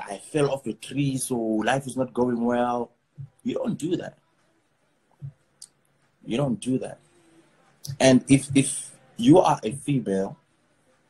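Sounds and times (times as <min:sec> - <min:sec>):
man speaking: 0:00.0 - 0:04.1, 0:06.3 - 0:07.0, 0:07.8 - 0:10.4.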